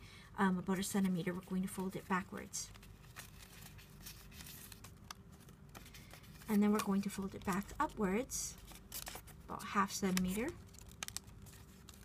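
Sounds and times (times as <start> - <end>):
paper rustling: 1.6 - 12.0
soft clicks of paper creasing: 1.8 - 12.0.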